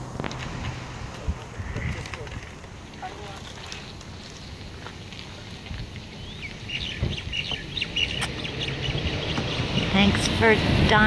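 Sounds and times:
birds chirping: 1.0 - 11.0.

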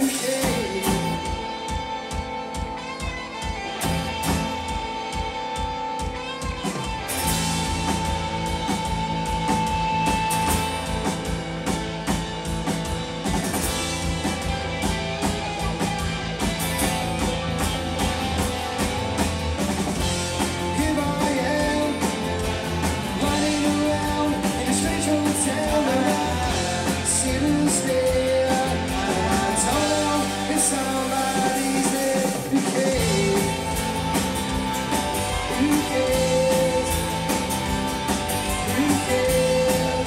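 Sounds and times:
lead vocals: 0.0 - 2.8, 20.0 - 40.0
acoustic guitar: 0.0 - 40.0
bass guitar: 0.0 - 40.0
drum kit: 0.0 - 40.0
electric guitar: 0.0 - 40.0.

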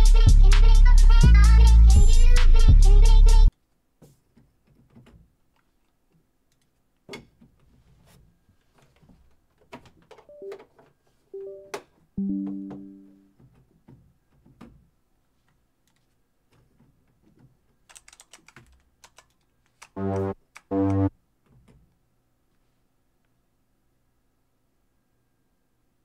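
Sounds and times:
short synth notes: 11.4 - 13.3, 20.0 - 21.1
computer mouse clicks and taps: 15.8 - 16.2, 17.9 - 21.0.

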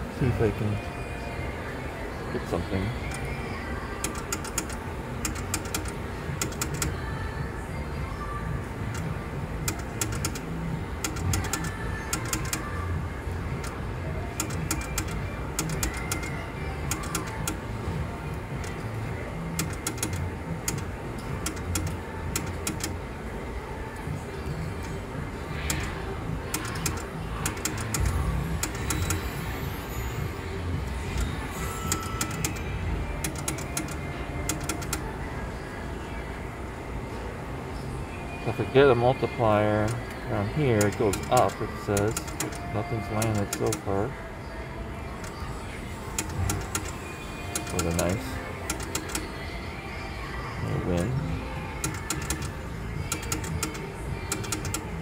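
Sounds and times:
casino music: 4.0 - 7.0, 8.9 - 12.8, 13.6 - 23.0, 24.6 - 35.0, 38.5 - 44.1, 45.2 - 49.3, 50.7 - 55.0
slot machine reel clicks: 4.0 - 7.0, 9.7 - 12.7, 13.6 - 17.6, 19.5 - 23.0, 25.6 - 29.4, 31.0 - 35.0, 39.8 - 43.9, 46.1 - 49.3, 51.8 - 55.0
casino voices: 39.8 - 44.1, 46.2 - 49.2.

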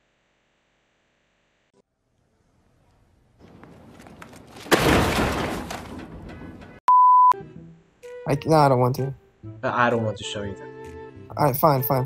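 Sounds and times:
camera crashing and clattering: 3.8 - 6.8
censor bleep: 6.9 - 7.4.

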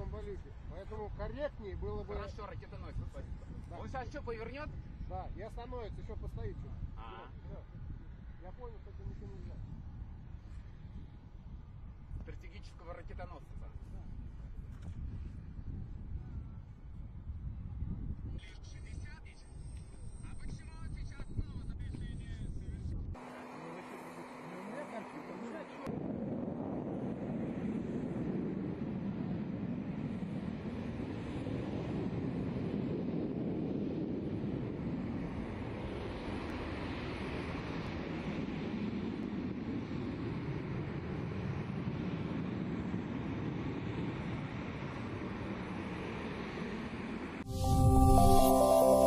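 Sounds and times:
jet engines flying past: 23.1 - 48.2
electronic music: 47.5 - 49.0.

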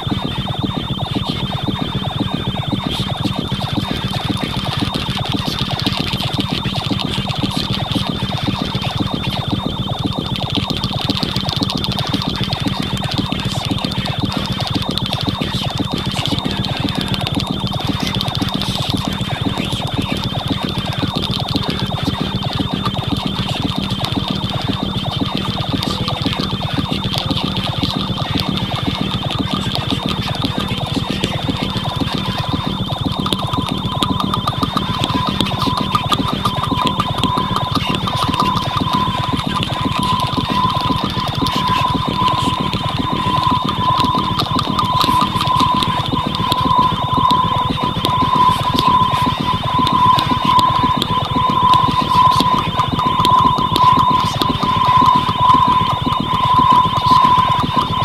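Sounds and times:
rapid clicking pulses: 0.0 - 58.0
steady high tone: 0.0 - 58.0.

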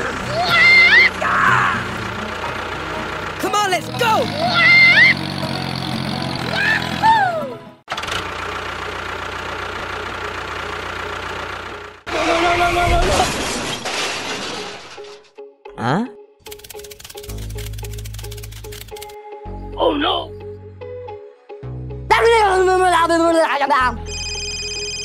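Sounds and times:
tractor engine running: 0.0 - 12.7, 16.5 - 19.2
squeaky cartoon-like voices: 0.2 - 1.8, 4.0 - 5.2.

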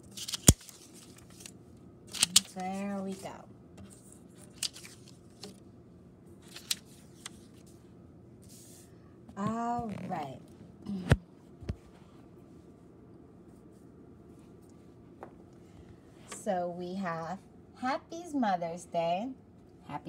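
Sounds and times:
person speaking: 2.1 - 3.5, 9.3 - 11.2.

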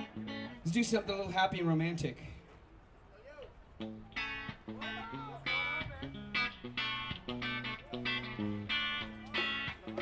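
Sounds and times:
bass guitar notes: 3.8 - 10.0
electric guitar chords: 3.8 - 10.0
sliding guitar notes: 3.8 - 10.0.

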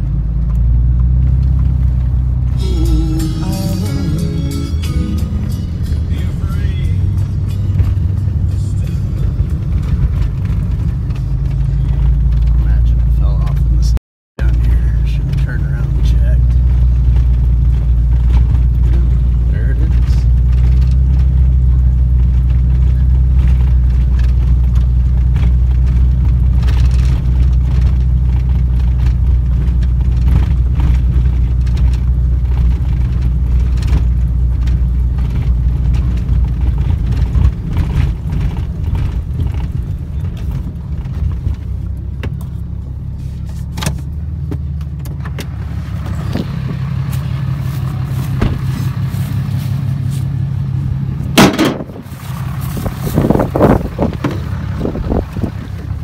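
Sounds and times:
truck engine and tyres rumbling: 0.0 - 56.0
knocks and rattles: 51.4 - 52.2.

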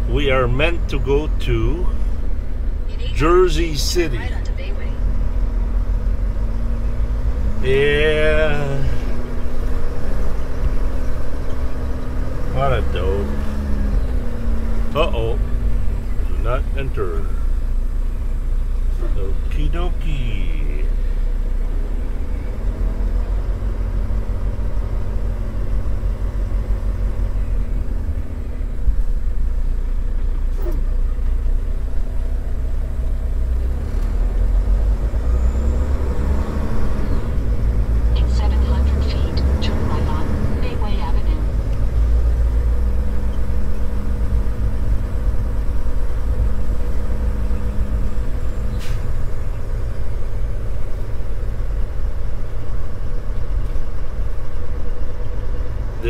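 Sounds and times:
diesel truck engine rumbling: 0.0 - 56.0.

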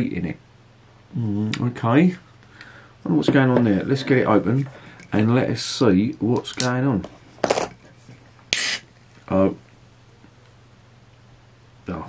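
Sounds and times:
can pop with gas hiss: 8.5 - 8.9.

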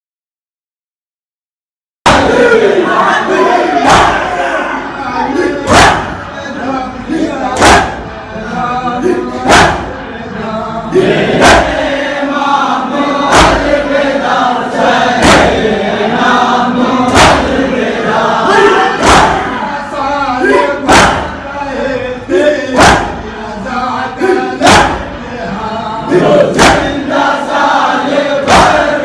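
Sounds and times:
crowd of men chanting: 2.1 - 29.0
collective chest-beating strike: 5.7 - 6.3, 7.6 - 8.2, 9.0 - 10.0, 13.3 - 13.8, 15.2 - 15.8, 17.1 - 17.7, 18.6 - 19.6, 20.8 - 21.4, 22.7 - 23.3, 24.2 - 25.1, 26.2 - 27.0, 28.4 - 29.0.

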